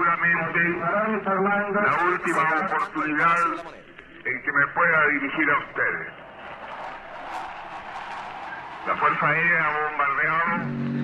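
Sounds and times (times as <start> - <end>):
steady rushing noise: 0.2 - 10.6.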